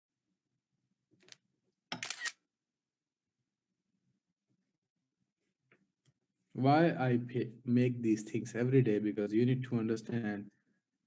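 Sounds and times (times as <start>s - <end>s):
camera shutter click: 2.0s - 2.4s.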